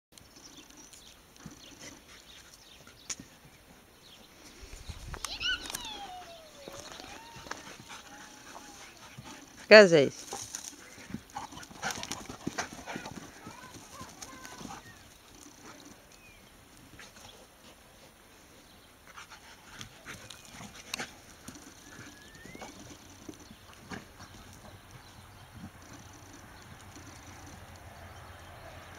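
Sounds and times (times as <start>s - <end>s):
dogs' paws thudding and scuffling: 0.3s - 18.2s, 19.0s - 28.9s.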